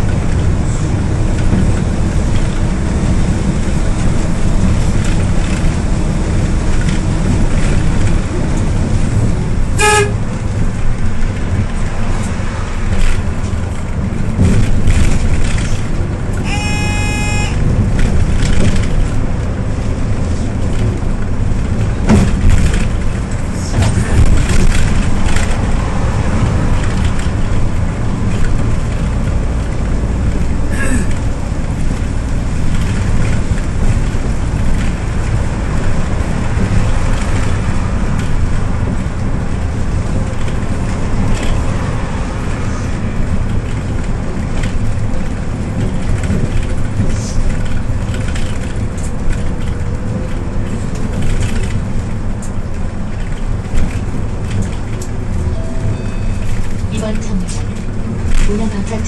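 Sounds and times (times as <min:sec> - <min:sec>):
bus engine rumble: 0:00.0 - 0:59.0
higher beep: 0:16.4 - 0:17.6, 0:55.5 - 0:56.6
short beep: 0:16.4 - 0:17.6, 0:55.5 - 0:56.6.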